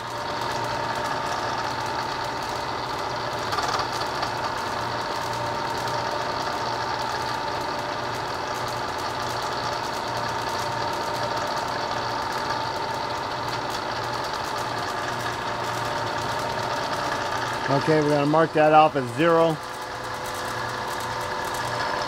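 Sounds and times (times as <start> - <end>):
milling machine whine: 0.0 - 22.0.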